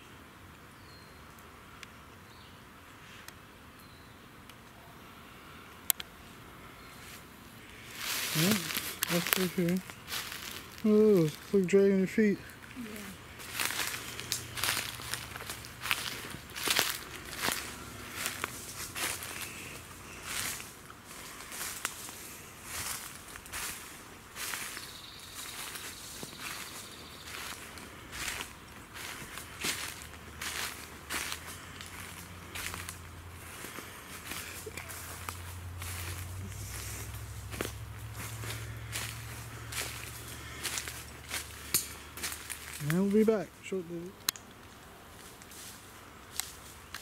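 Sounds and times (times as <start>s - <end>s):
footsteps crunching dry leaves: 7.0s - 44.1s, 45.0s - 47.0s.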